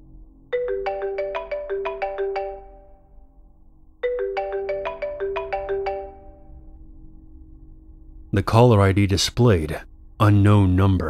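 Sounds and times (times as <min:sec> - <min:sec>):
mobile phone ringtone: 0:00.6 - 0:03.0, 0:04.0 - 0:06.6.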